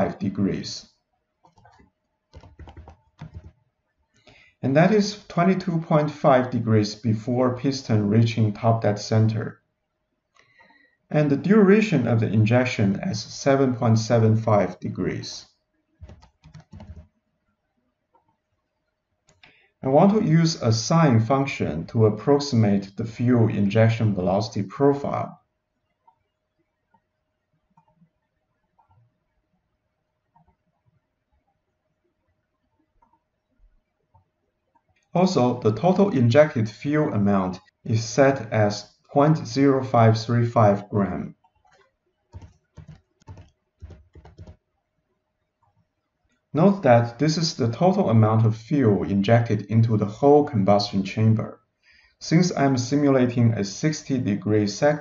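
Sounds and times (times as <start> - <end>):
man speaking: 0.0 - 0.9, 4.6 - 9.6, 11.1 - 15.5, 19.8 - 25.4, 35.2 - 41.4, 46.6 - 51.6, 52.2 - 55.0
computer keyboard keystrokes: 1.4 - 3.6, 16.0 - 17.1, 42.3 - 44.6
faint clicks: 19.2 - 19.7.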